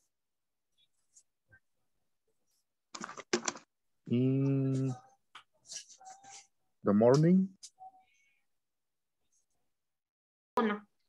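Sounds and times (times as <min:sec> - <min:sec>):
keyboard typing clatter: 0:02.9 - 0:03.7.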